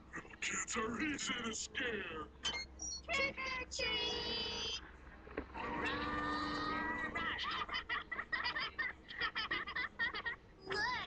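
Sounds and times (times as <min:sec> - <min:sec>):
choppy cartoon character voices: 0:00.1 - 0:02.4, 0:03.0 - 0:04.8, 0:05.7 - 0:11.0
long wavering cry: 0:05.7 - 0:07.1.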